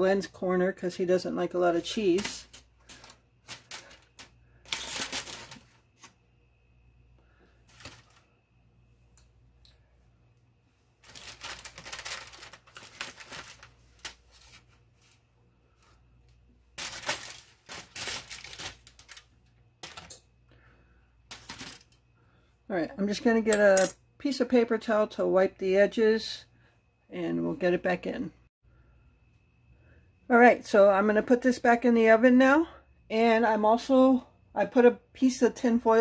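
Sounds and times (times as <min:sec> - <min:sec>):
crinkling and scraping: 0:01.7 - 0:06.2, 0:07.6 - 0:08.3, 0:11.0 - 0:20.2, 0:21.3 - 0:22.0.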